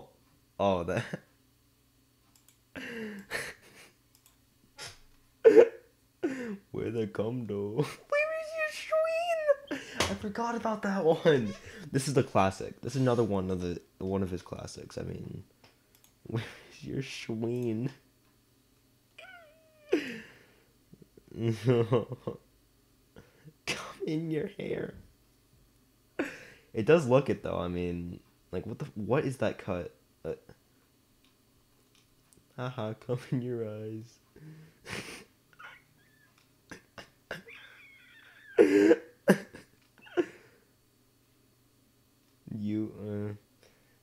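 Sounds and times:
faint clicks: 0:02.3 - 0:03.3, 0:04.1 - 0:04.4, 0:15.6 - 0:16.2
high-pitched meow-like cry: 0:19.2 - 0:20.0
person coughing: 0:38.6 - 0:39.4.

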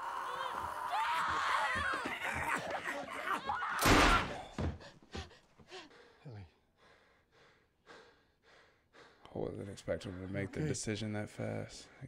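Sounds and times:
faint gasps and breaths: 0:04.6 - 0:10.8.

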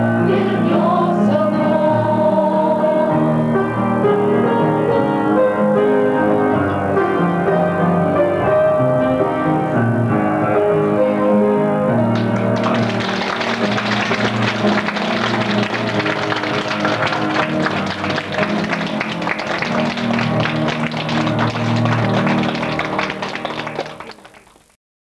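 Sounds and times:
piano playing sustained chords: 0:00.0 - 0:24.2
hands clapping: 0:12.1 - 0:24.8.

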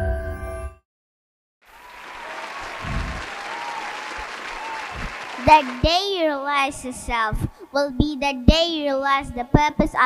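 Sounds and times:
audience applauding: 0:01.7 - 0:06.6.

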